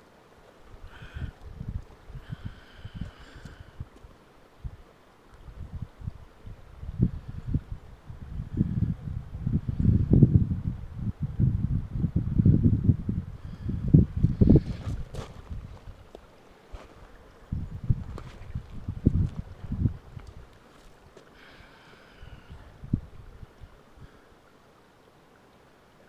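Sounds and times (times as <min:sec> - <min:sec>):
wind buffeting the microphone: 0:00.6 - 0:21.1, 0:22.2 - 0:24.2.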